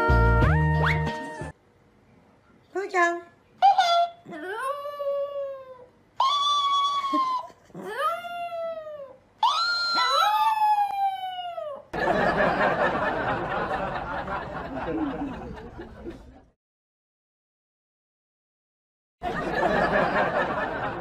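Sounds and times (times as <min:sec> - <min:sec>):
small dog howling: 0:03.6 - 0:12.0.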